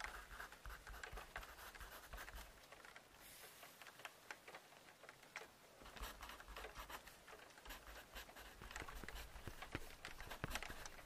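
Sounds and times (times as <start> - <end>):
background hiss: 0.0 - 11.0
scratching and light clicks: 0.0 - 11.0.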